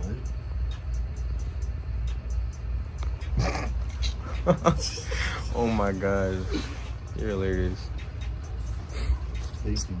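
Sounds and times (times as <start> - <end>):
person laughing: 3.2 - 5.8.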